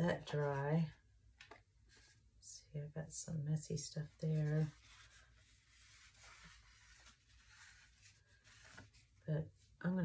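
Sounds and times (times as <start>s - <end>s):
wipe rubbing on cutting mat: 4.3s - 9.0s.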